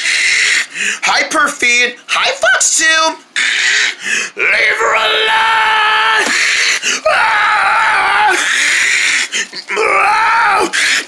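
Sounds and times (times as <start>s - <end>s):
person screaming: 3.6s - 11.0s.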